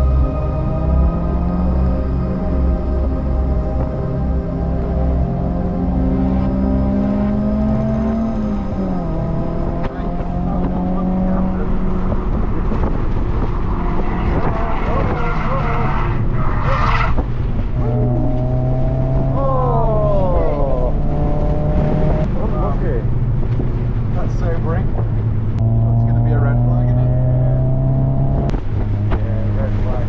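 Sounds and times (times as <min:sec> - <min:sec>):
car engine running: 0:00.0 - 0:30.0
wind noise: 0:06.2 - 0:30.0.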